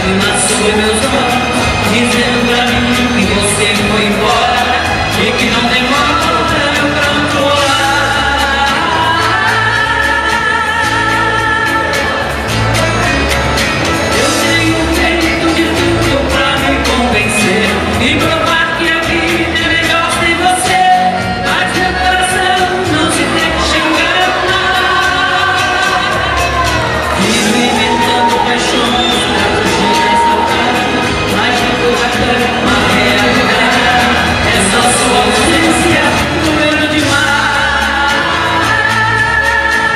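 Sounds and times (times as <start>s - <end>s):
amplified backing music: 0.0s - 39.9s
woman singing into microphone: 2.0s - 12.3s, 20.4s - 39.9s.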